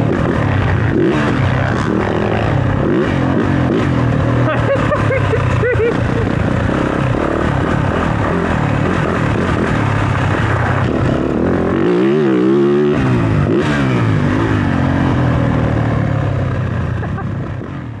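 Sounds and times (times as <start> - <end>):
dirt bike engine revving: 0.0 - 18.0.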